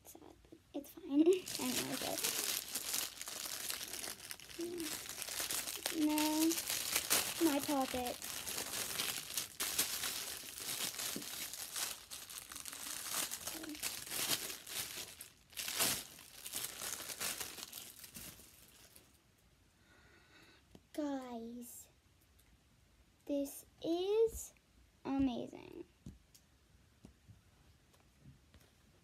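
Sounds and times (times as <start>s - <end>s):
person speaking: 0.0s - 3.2s, 4.0s - 11.9s, 12.8s - 14.0s
plastic bag crinkling: 1.0s - 19.2s.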